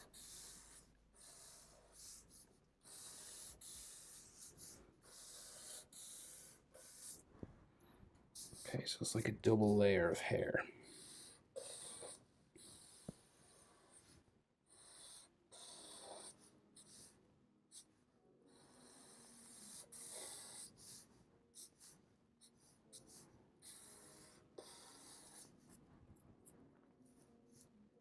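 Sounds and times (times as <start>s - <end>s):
marker scratching on paper: 0.0s - 7.3s, 8.4s - 8.8s, 10.8s - 17.2s, 18.5s - 25.8s.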